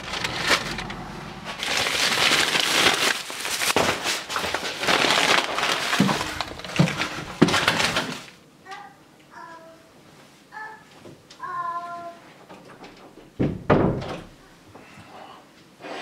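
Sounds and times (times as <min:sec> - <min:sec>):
plastic bag crinkling: 0:00.0 - 0:08.4.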